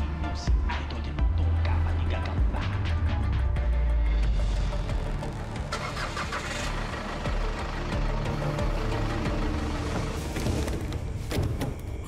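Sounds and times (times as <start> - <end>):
music: 0.0 - 12.0
vehicle engine starting and pulling away: 4.3 - 11.1.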